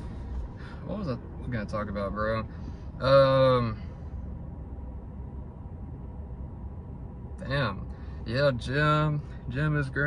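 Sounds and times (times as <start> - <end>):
low hum in car cabin: 0.0 - 10.0.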